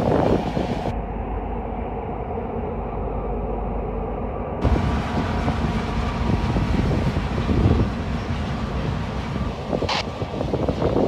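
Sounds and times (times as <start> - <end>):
freight train rumbling past: 0.0 - 11.0.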